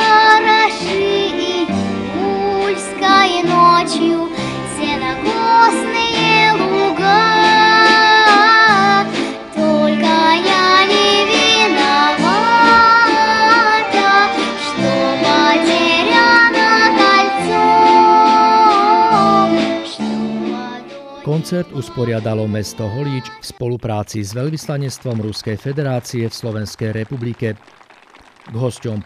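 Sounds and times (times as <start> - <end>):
plucked folk string orchestra: 0.0 - 23.4
girl singing with held notes: 0.0 - 23.5.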